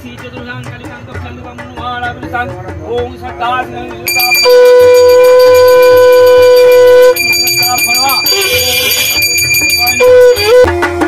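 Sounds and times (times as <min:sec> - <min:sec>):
conch shell blown: 0:04.1 - 0:10.8.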